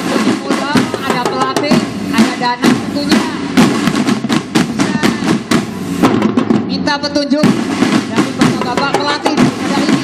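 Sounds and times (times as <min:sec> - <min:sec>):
marching snare and bass drums: 0:00.0 - 0:10.0.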